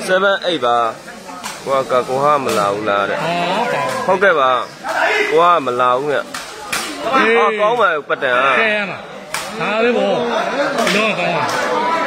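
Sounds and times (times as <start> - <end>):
man talking: 1.6 - 6.3.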